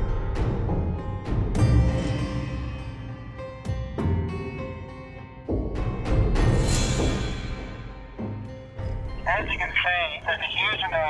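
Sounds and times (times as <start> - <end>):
dramatic background music: 0.0 - 9.5
man speaking through face mask: 9.3 - 11.0.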